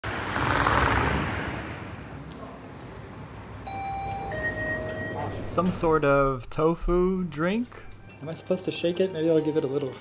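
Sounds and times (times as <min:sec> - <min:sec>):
vehicle passing on street: 0:00.0 - 0:03.7
electronic door chime: 0:03.6 - 0:06.0.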